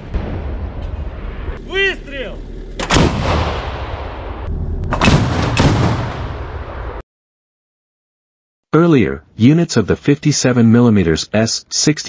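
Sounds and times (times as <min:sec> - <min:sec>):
heavy shell explosion: 0:00.0 - 0:01.8, 0:02.8 - 0:07.0
gunfire: 0:02.8 - 0:06.9.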